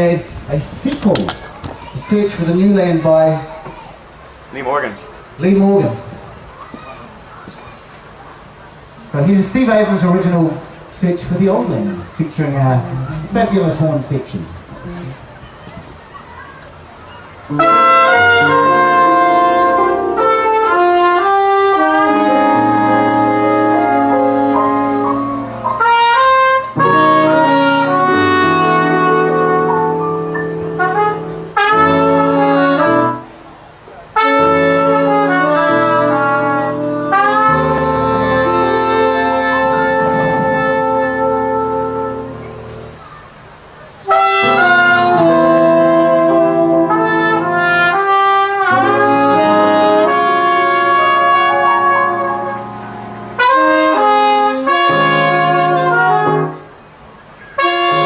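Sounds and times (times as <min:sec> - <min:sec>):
bass: 0:17.5 - 0:33.2, 0:34.3 - 0:43.0
saxophone: 0:17.5 - 0:33.6, 0:34.2 - 0:43.1, 0:44.0 - 0:56.8, 0:57.4 - 0:58.0
trumpet: 0:17.5 - 0:43.0, 0:44.0 - 0:58.0.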